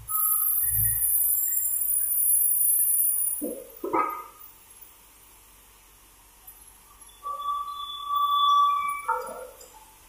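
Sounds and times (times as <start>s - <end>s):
log carriage squealing on rails: 0.0s - 4.4s, 6.7s - 10.0s.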